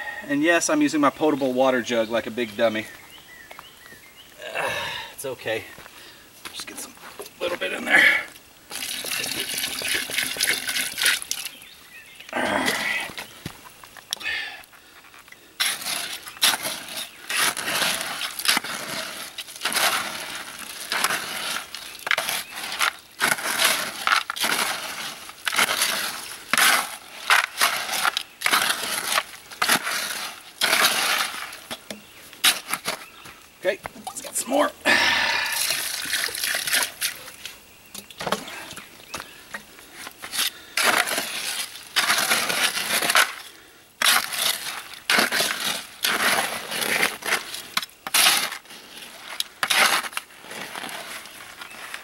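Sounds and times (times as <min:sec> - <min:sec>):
trowel scraping concrete mix in bucket: 0:07.4 - 0:11.6, 0:15.6 - 0:33.2, 0:33.9 - 0:37.4, 0:40.0 - 0:52.0.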